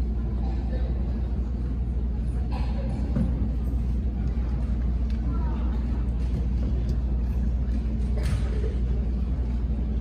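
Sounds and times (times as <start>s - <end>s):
audience murmuring: 0.0s - 10.0s
low rumble of room noise: 0.0s - 10.0s.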